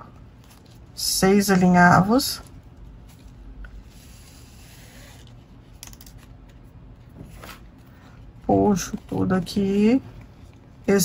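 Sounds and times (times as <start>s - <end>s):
ribbon rustling: 0.2s - 1.0s, 2.3s - 11.0s.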